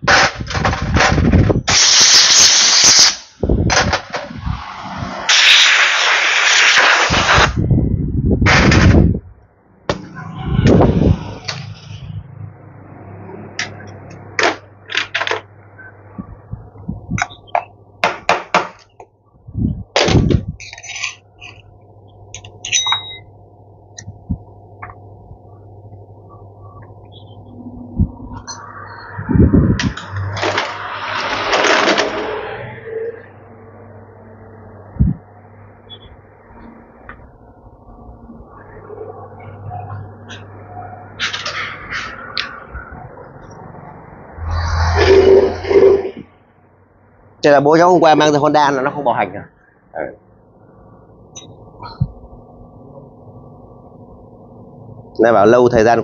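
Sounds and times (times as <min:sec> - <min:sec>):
hiss: 0:01.7 - 0:03.3, 0:04.6 - 0:07.6
steady low hum: 0:18.8 - 0:30.7, 0:32.9 - 0:44.4
metallic clinks of tools: 0:22.4 - 0:23.3.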